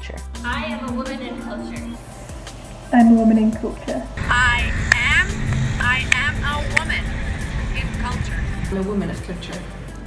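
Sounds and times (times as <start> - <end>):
woman's voice: 0.4 - 2.0
city street traffic rumble: 2.0 - 10.0.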